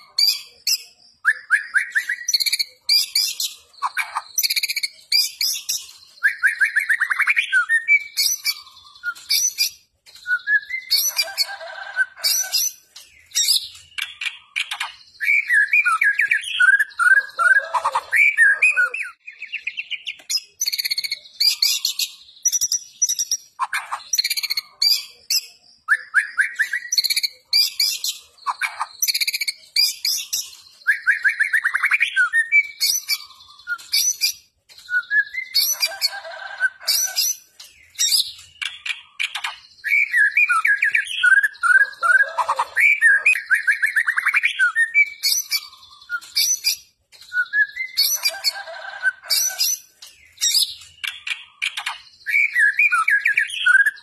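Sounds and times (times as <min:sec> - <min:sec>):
songbird singing trills and whistles: 0:00.0 - 0:54.0.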